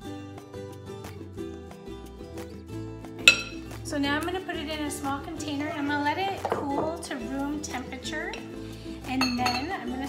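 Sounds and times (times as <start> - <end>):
background music with beat: 0.0 - 10.0
spatula clinking glass bowl: 3.3 - 3.7, 9.1 - 9.8.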